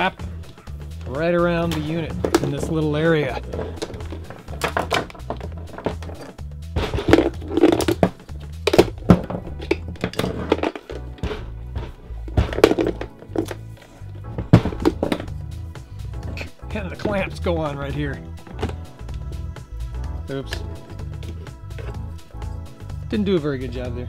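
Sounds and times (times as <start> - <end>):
background music: 0.0 - 24.0
plastic charger knocking on wood: 6.8 - 13.6, 14.3 - 15.4.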